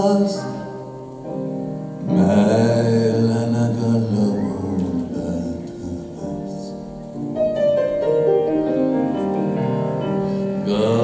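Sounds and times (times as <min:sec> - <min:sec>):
grand piano playing: 0:00.0 - 0:11.0.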